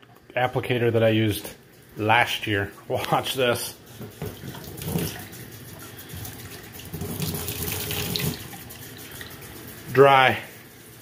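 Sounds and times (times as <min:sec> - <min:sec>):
faucet water splashing on a pad: 0:04.5 - 0:09.5.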